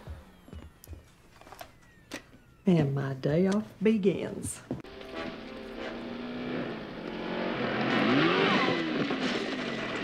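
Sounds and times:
car engine revving: 4.9s - 10.0s.

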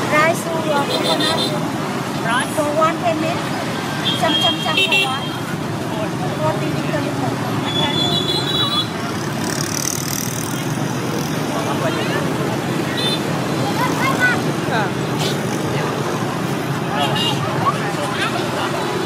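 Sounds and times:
people talking: 0.0s - 1.5s, 2.2s - 8.6s, 11.5s - 19.0s
street traffic: 0.0s - 19.0s.

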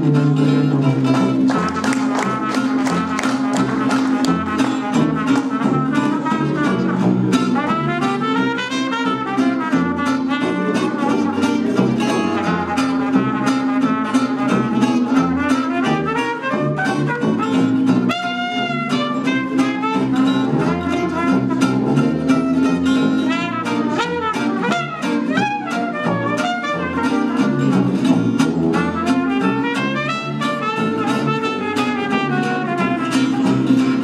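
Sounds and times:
bass saxophone: 0.0s - 34.0s
strummed acoustic guitar: 0.0s - 34.0s
trumpet: 1.1s - 34.0s.

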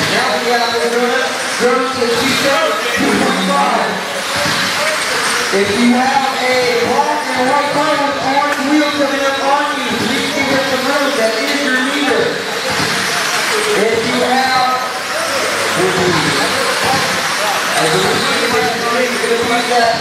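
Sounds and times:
indistinct voices talking: 0.0s - 20.0s.

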